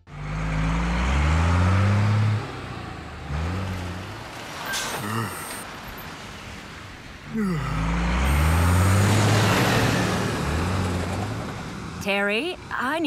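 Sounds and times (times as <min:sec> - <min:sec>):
cartoon truck engine accelerating: 0:00.0 - 0:05.7, 0:07.3 - 0:12.1.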